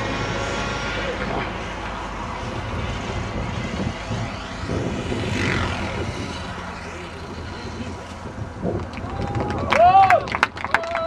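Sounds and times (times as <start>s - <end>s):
model aircraft engine whining: 0.0s - 9.1s.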